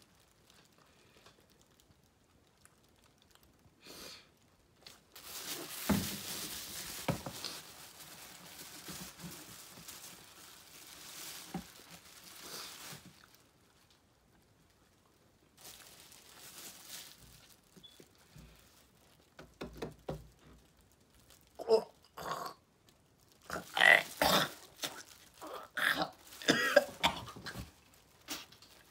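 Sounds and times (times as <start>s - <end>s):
plastic bag crinkling: 0.0s - 3.8s, 4.4s - 22.0s, 22.8s - 28.9s.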